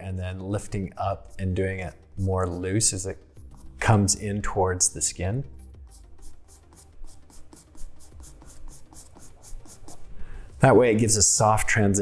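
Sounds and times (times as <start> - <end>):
charcoal pencil scratching on paper: 0.9 - 1.8, 3.4 - 4.1, 5.8 - 10.2.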